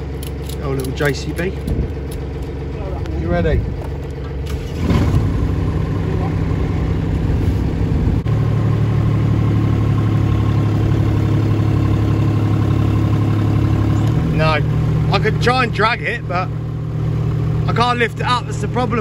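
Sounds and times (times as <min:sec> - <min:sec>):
small diesel engine running: 0:00.0 - 0:19.0.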